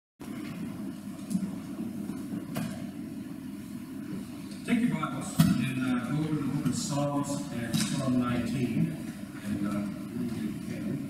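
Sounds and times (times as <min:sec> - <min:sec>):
low room hum: 0:00.2 - 0:11.0.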